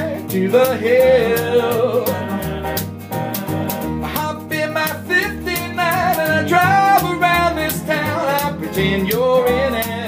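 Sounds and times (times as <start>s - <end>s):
lap-played guitar: 0.0s - 10.0s
strummed acoustic guitar: 0.0s - 10.0s
upright bass notes: 0.0s - 10.0s.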